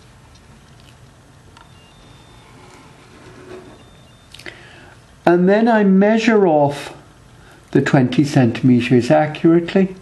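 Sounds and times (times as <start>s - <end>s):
low room hum: 0.0s - 10.0s
biro scratching along ruler: 1.7s - 4.3s.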